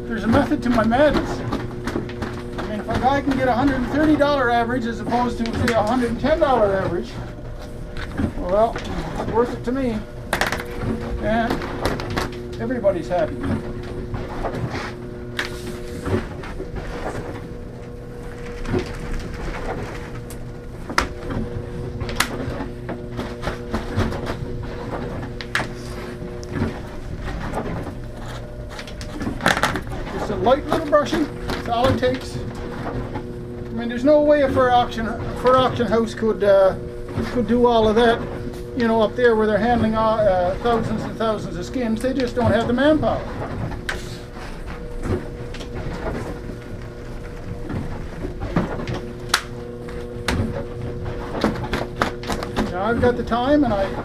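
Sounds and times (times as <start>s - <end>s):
steady hum of held tones: 0.0s - 54.0s.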